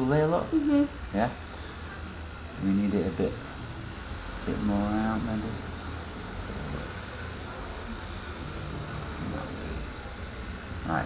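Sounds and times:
tattoo machine humming: 0:00.0 - 0:11.0.

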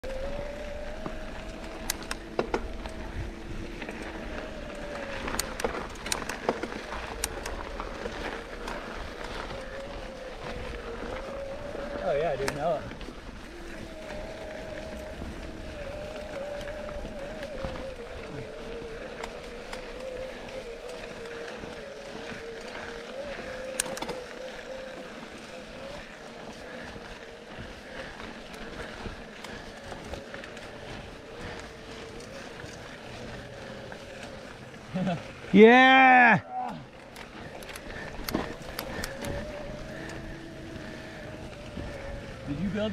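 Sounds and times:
electric bike motor whining: 0:00.0 - 0:42.9
sharp clicks from bikes: 0:00.0 - 0:42.9
tyres on dirt: 0:00.0 - 0:42.9.

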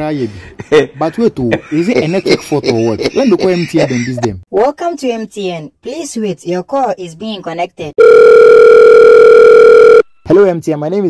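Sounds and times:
telephone line beep: 0:08.0 - 0:10.1.

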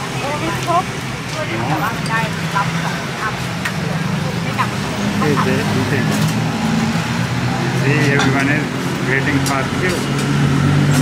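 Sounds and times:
chatter of people: 0:00.0 - 0:10.3
low engine-like hum: 0:00.0 - 0:11.0.

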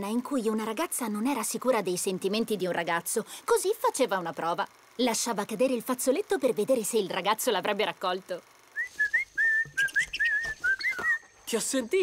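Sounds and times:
sliding whistled notes: 0:08.8 - 0:11.4.

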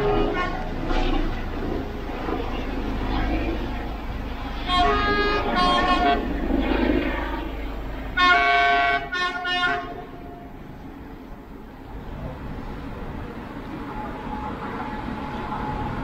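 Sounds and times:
train horn blasts: 0:00.0 - 0:01.6, 0:04.5 - 0:10.8.

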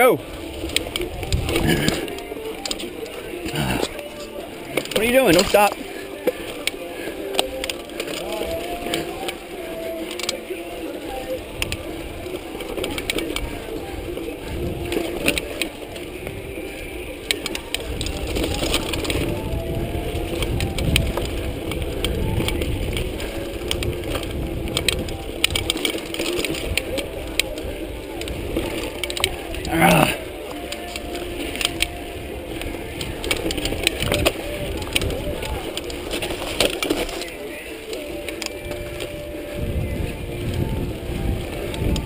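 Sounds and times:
tyre and wind rumble: 0:00.0 - 0:42.0
bike clicks and rattles: 0:00.1 - 0:42.0.

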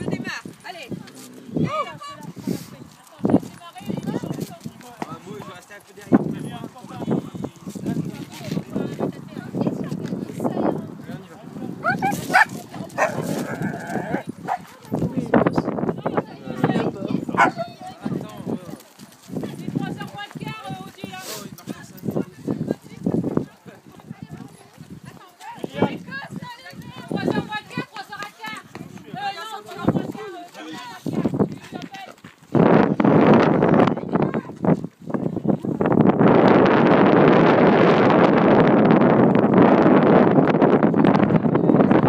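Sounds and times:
people's voices: 0:00.0 - 0:42.0
dogs barking and yelping: 0:11.8 - 0:14.7, 0:17.3 - 0:17.7.

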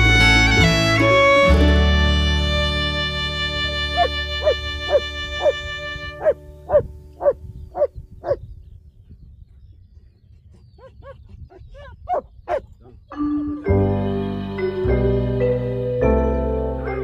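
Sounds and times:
dog barking: 0:04.0 - 0:05.6, 0:06.2 - 0:08.4.

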